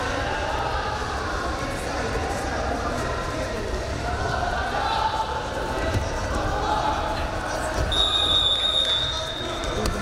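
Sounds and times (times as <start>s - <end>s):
voices shouting in a hall: 0.0s - 10.0s.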